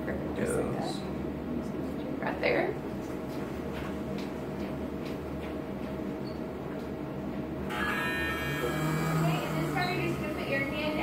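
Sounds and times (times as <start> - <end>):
electronic buzz: 7.7 - 11.0
lower hum: 7.7 - 11.0.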